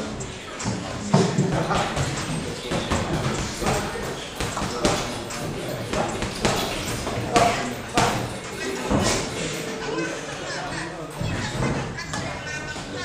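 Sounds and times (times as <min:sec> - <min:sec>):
boxing gloves smacking: 0:01.6 - 0:08.3.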